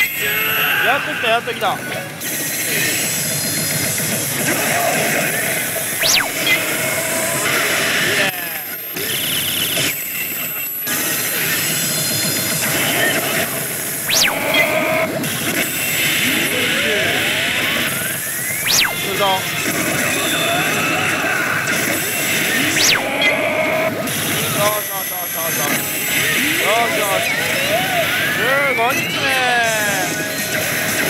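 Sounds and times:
pachinko parlor din: 0.0 - 31.0
slot machine music and effects: 1.6 - 31.0.

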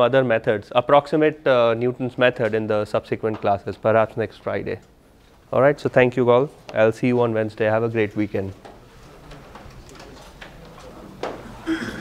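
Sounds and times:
low murmur of voices: 8.6 - 12.0.

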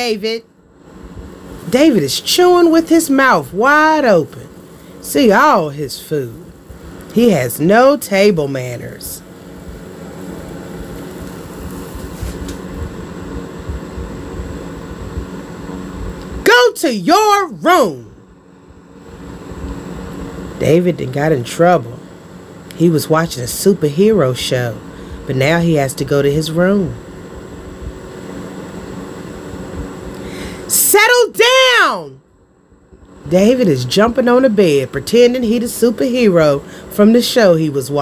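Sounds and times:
low rumbling hum: 0.0 - 38.0.

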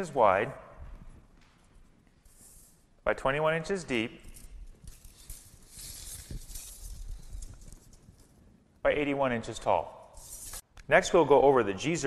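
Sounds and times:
tape measure scraping hiss: 2.2 - 2.9, 4.4 - 8.2, 10.1 - 10.6.

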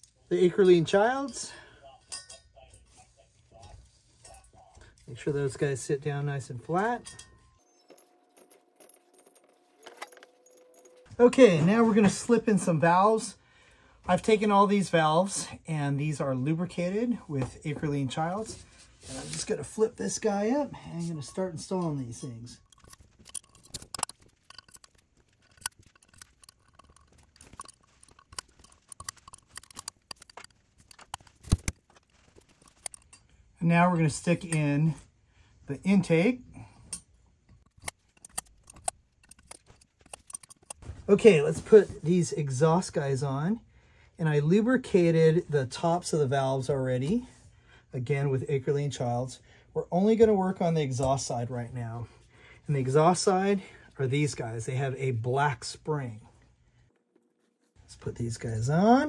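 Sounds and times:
metallic clink: 2.1 - 2.8, 6.8 - 11.2, 20.8 - 31.2
light clicks of parts handled: 22.7 - 33.4.

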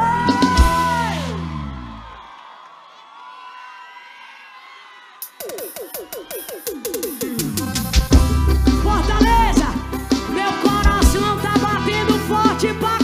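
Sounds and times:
live band playing: 0.0 - 1.3, 5.4 - 13.0
crowd cheering and whooping: 0.0 - 13.0.

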